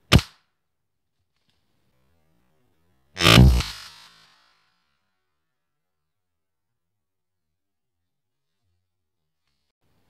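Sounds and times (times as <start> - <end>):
gunshot: 0.1 - 0.4, 3.2 - 3.8.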